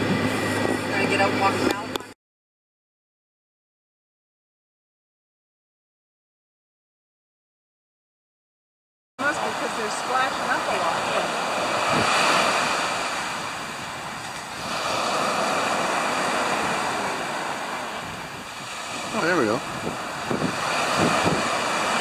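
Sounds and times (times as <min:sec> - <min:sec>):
ocean surf rushing: 0:00.0 - 0:02.0, 0:09.2 - 0:22.0
wind on microphone: 0:00.0 - 0:02.1, 0:09.2 - 0:22.0.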